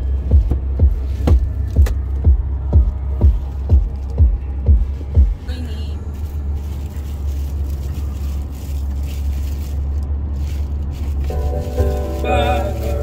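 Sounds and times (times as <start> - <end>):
car cabin rumble: 0.0 - 13.0
music with sung melody: 11.3 - 13.0.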